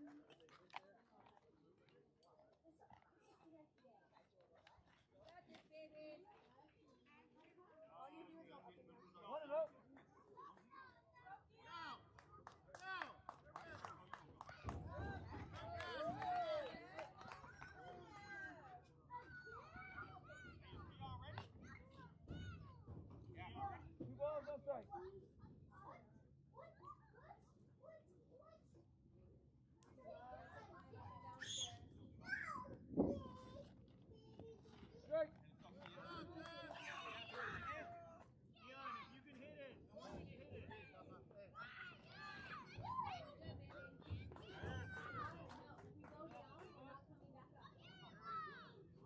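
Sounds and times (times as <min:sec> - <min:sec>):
voices of players and spectators: 0:00.0 - 0:49.0.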